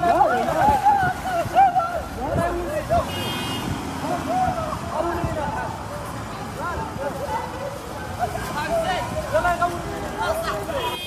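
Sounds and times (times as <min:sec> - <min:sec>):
people calling out loudly: 0:00.0 - 0:11.0.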